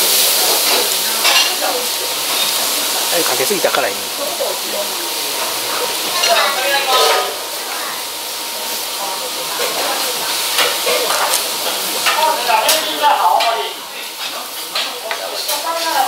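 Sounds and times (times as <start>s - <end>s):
hiss of kitchen noise: 0.0s - 16.0s.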